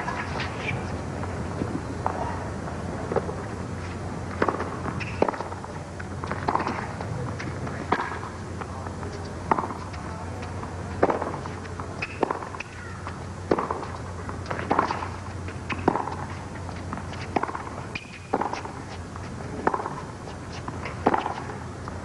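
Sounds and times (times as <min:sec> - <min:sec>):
tennis balls bouncing on court: 0:00.0 - 0:03.6, 0:04.2 - 0:22.0
tennis balls struck by racquets: 0:04.3 - 0:22.0.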